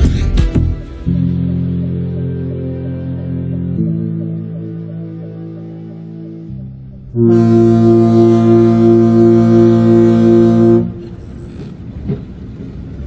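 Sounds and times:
ship's horn blast: 7.0 - 11.9.

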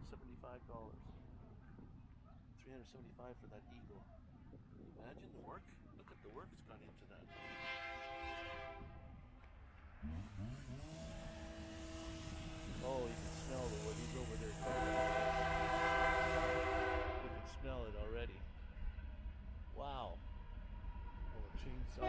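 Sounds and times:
train rumble: 0.0 - 2.0, 10.9 - 22.0
train horn blasts: 7.3 - 9.1, 10.8 - 17.7.

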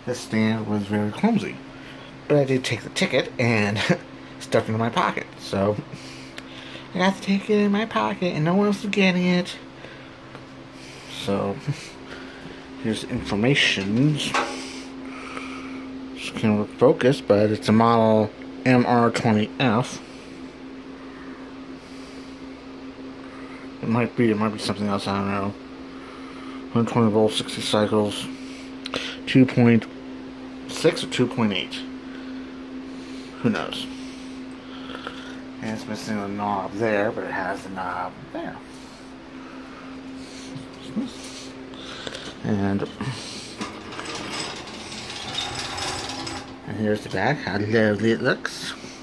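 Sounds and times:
steady machine hum: 0.0 - 49.0
box fan clicking and rattling: 43.4 - 47.1.

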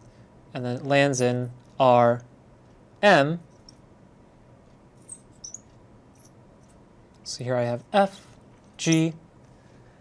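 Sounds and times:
marker squeaking on glass: 5.1 - 5.7.

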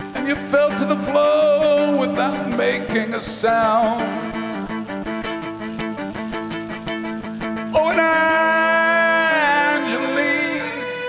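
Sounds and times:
bowed fiddle: 0.0 - 11.0
strummed acoustic guitar: 0.0 - 11.0.

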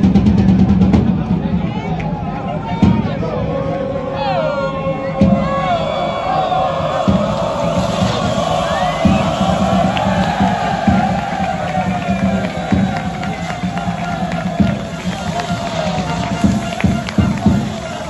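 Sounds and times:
crowd cheering and singing: 0.0 - 18.0
loud music: 3.4 - 18.0
low pulses: 3.4 - 18.0.

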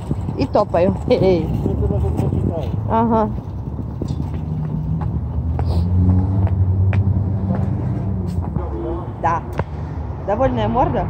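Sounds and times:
vehicle engine low rumble: 0.0 - 11.0.

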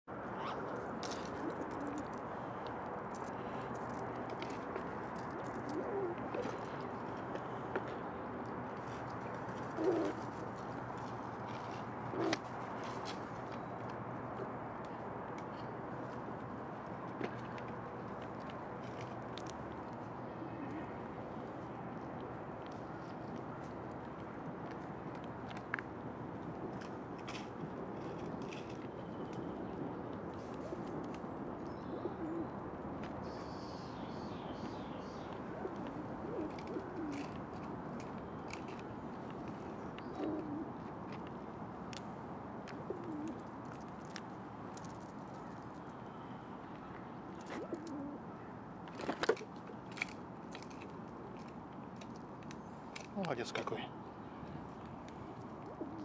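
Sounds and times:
pigeon cooing: 0.4 - 2.2, 5.3 - 7.0, 9.6 - 10.3, 12.1 - 12.4, 20.4 - 21.0, 31.8 - 32.6, 35.4 - 37.4, 40.0 - 40.8, 42.8 - 43.5, 47.4 - 48.2, 55.6 - 56.0.

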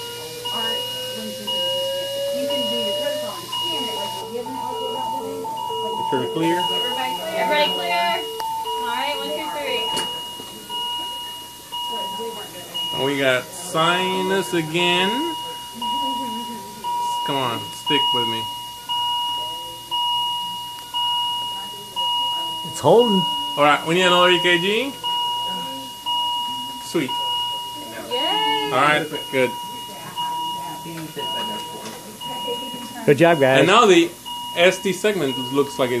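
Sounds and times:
defibrillator rising charge tone: 0.0 - 36.0
repeating two-note beep: 0.4 - 20.4.

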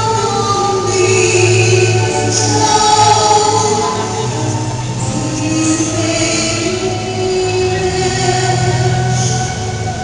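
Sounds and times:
keyboard accompaniment: 0.0 - 10.0
violin: 0.0 - 10.0
woman singing a hymn: 0.0 - 10.0.

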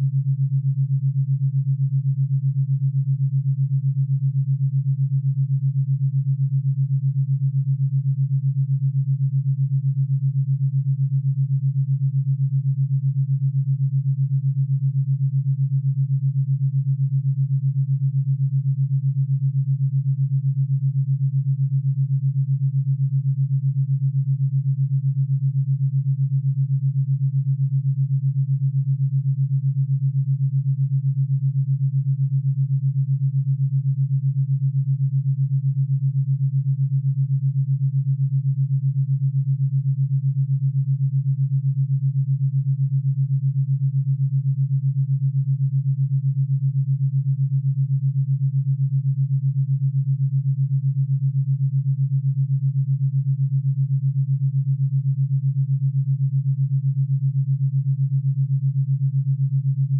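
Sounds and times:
pulsing low sine tone: 0.0 - 59.9.

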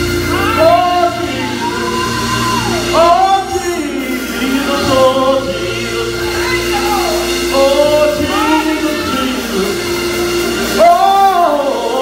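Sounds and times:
held instrumental tones: 0.0 - 12.0
women singing gospel: 0.0 - 12.0.

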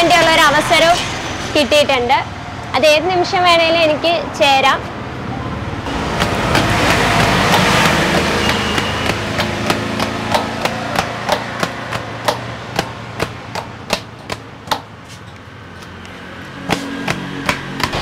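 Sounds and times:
road vehicle engine rumbling: 0.0 - 18.0
hands slapping dough: 6.5 - 14.9, 16.6 - 18.0.

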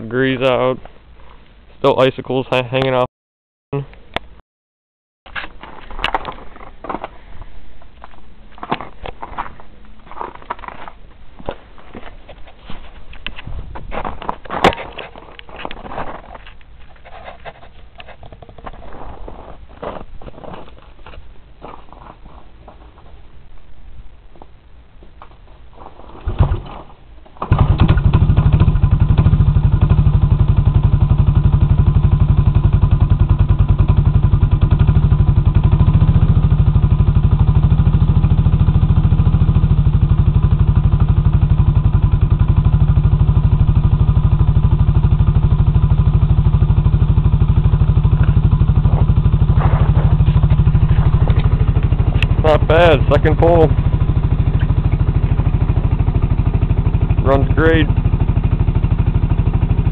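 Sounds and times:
pull starter: 27.4 - 28.4
engine idling: 27.4 - 59.9.

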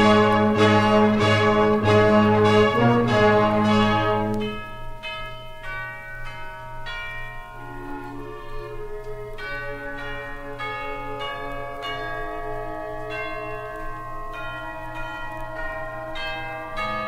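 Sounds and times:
steady low hum: 0.0 - 17.0
bells ringing single notes: 3.6 - 17.0.

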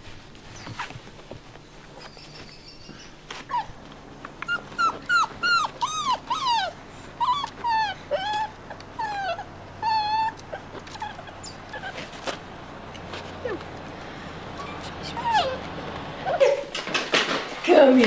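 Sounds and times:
dog whimpering: 3.5 - 3.8, 4.4 - 12.4, 13.4 - 13.7, 14.5 - 16.7.

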